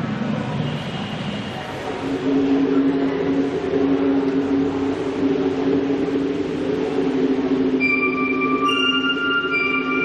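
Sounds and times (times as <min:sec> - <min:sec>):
low synthesizer pad chord: 0:01.7 - 0:10.0.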